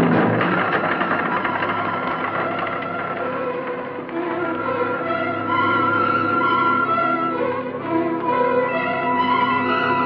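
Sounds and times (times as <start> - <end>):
held string tones: 0.0 - 10.0
rapid rattling orchestral texture: 0.0 - 10.0.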